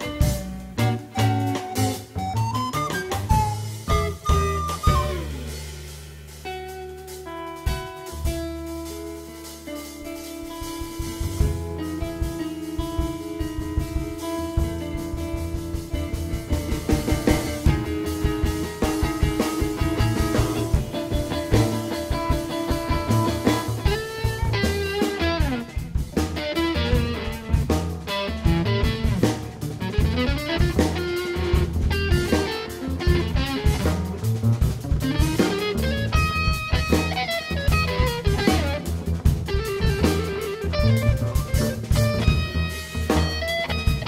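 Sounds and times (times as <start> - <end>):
plucked double bass: 0.0 - 5.1, 28.4 - 37.1, 40.7 - 44.0
drum kit: 0.0 - 44.0
electric guitar lines: 0.0 - 44.0.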